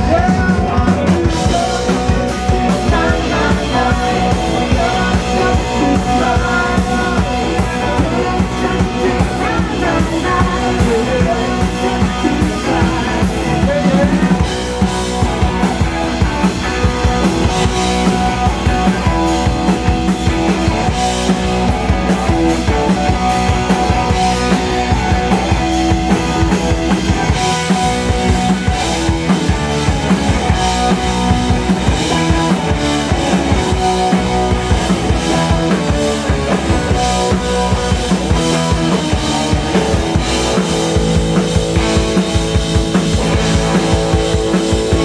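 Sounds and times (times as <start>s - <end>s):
drum kit rock beat: 0.0s - 45.0s
electric bass: 0.0s - 45.0s
electric guitars: 0.0s - 45.0s.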